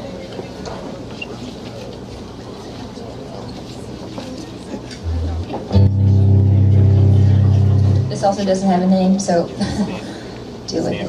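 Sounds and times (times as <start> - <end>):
electric guitar low notes: 5.0 - 8.6.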